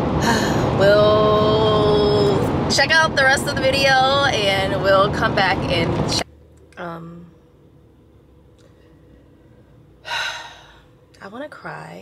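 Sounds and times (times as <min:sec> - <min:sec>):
woman sighing heavily: 0:10.0 - 0:10.9.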